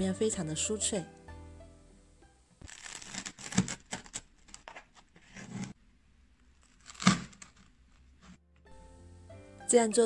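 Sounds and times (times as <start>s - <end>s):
background music: 0.0s - 3.0s, 8.4s - 10.0s
cleaver crunching through flatbread: 2.6s - 5.7s, 6.6s - 8.3s.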